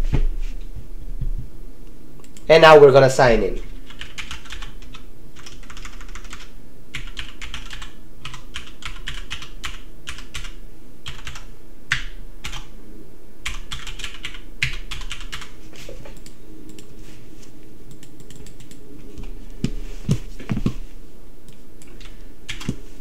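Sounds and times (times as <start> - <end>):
typing on computer keyboard: 3.9 - 12.7, 13.5 - 15.5, 17.9 - 18.8, 21.9 - 22.8.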